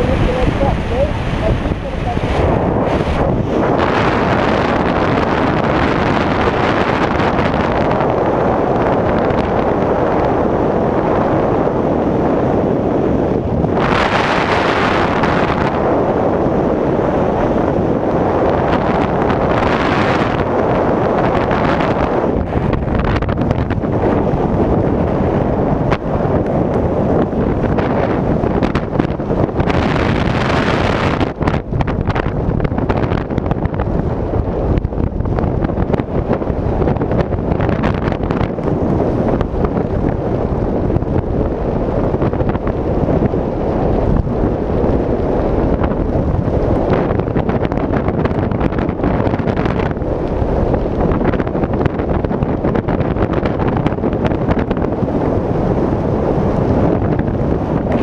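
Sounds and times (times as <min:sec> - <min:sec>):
wind rushing past microphone: 0:00.0 - 0:58.0.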